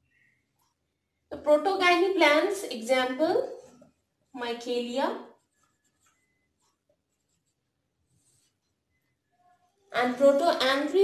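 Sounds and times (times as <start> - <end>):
marker squeaking on whiteboard: 5.4 - 10.0.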